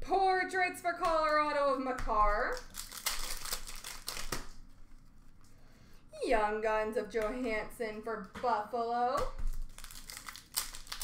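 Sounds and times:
wrappers and cards crinkling: 0:02.4 - 0:05.6, 0:09.4 - 0:11.0.

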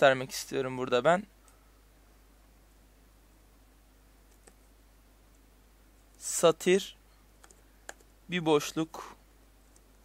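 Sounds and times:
faint keyboard keystrokes: 0:04.3 - 0:04.6, 0:07.4 - 0:08.1.

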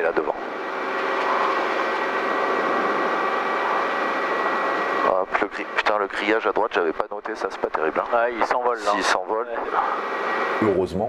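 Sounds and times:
helicopter engine and rotor: 0:00.0 - 0:10.7.

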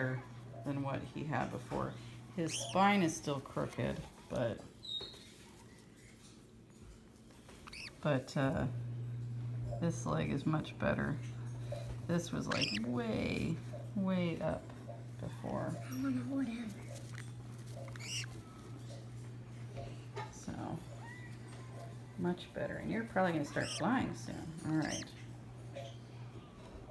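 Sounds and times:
low background hum: 0:00.0 - 0:26.9
parrot chick squeak: 0:02.4 - 0:03.1, 0:07.6 - 0:08.0, 0:12.4 - 0:13.0, 0:16.9 - 0:18.6, 0:20.8 - 0:21.8, 0:23.4 - 0:24.0, 0:24.7 - 0:25.2.

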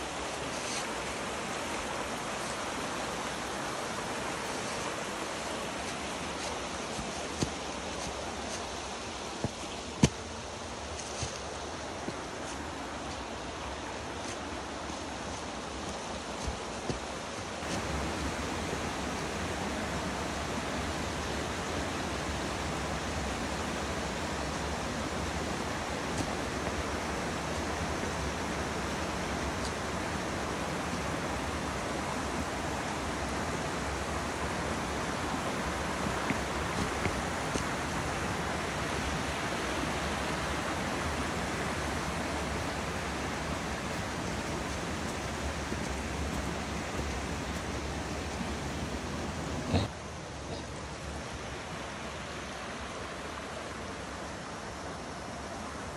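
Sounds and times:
stream flowing over rocks: 0:00.0 - 0:55.9.

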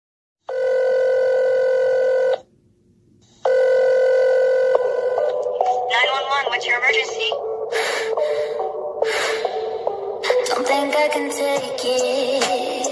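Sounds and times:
buzzy telephone tone: 0:00.5 - 0:02.5, 0:03.4 - 0:07.6.

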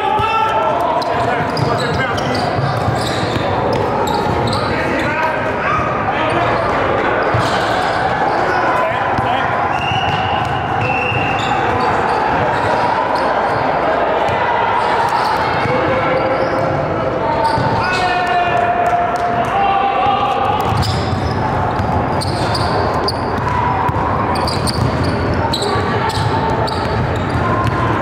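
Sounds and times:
echoing voices: 0:00.0 - 0:28.0
sneakers squeaking: 0:00.2 - 0:18.2, 0:20.4 - 0:28.0.

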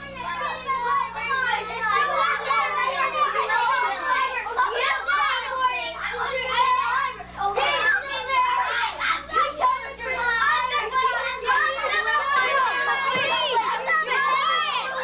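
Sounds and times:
children talking and shouting: 0:00.0 - 0:15.0.

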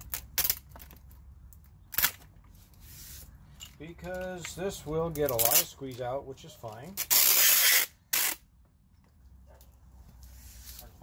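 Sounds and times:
tape dispenser handling: 0:00.0 - 0:01.2, 0:01.8 - 0:03.2, 0:05.1 - 0:06.0, 0:06.8 - 0:08.5.

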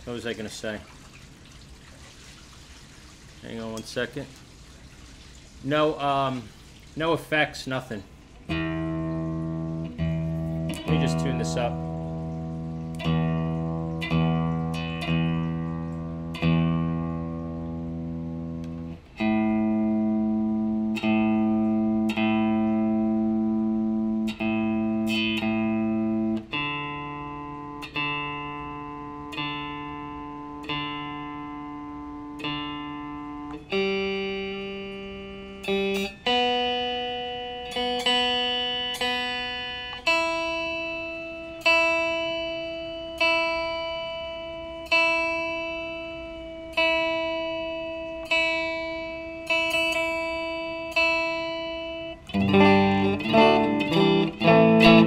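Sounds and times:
electric guitar strings plucked: 0:08.3 - 0:55.0.

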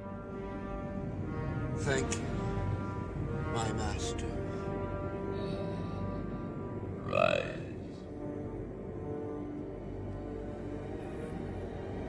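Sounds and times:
dark orchestral music: 0:00.0 - 0:12.0.

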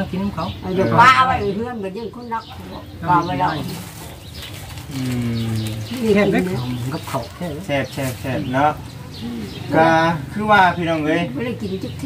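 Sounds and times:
faint background sound: 0:00.0 - 0:12.0.

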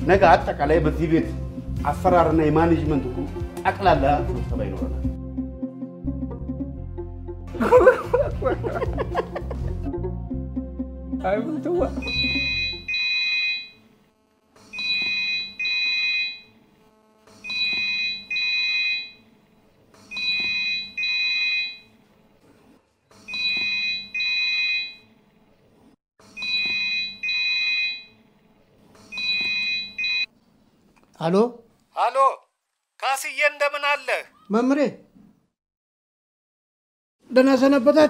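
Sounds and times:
mobile phone ringing: 0:12.0 - 0:13.9, 0:14.7 - 0:16.6, 0:17.4 - 0:19.3, 0:20.1 - 0:22.0, 0:23.3 - 0:25.1, 0:26.4 - 0:28.2, 0:29.1 - 0:30.3.

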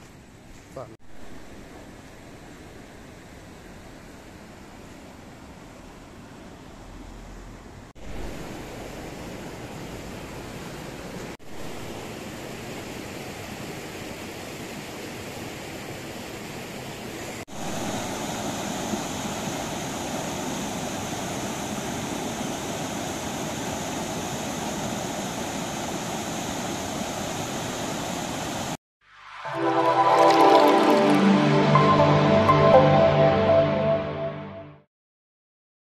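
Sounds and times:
river water rushing over rocks: 0:08.0 - 0:28.7, 0:29.5 - 0:31.5.

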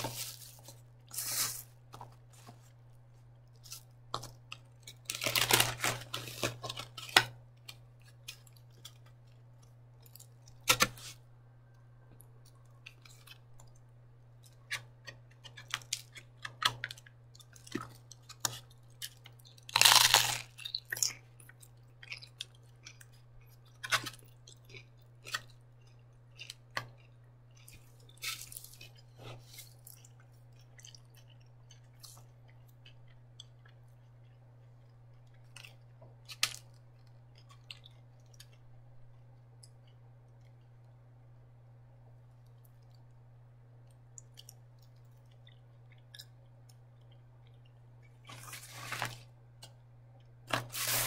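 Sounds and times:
chewing: 0:14.4 - 0:41.0, 0:43.8 - 0:48.5
utensil scraping foam box: 0:50.6 - 0:51.0.

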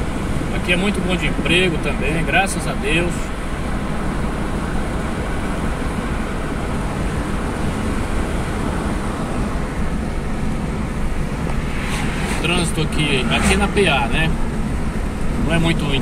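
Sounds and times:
car engine hum: 0:00.0 - 0:16.0
tyres on asphalt: 0:00.0 - 0:16.0.

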